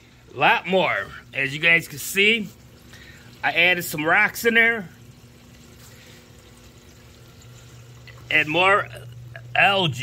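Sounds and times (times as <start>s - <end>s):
low pump hum: 0.0s - 10.0s
water running and trickling: 0.0s - 10.0s.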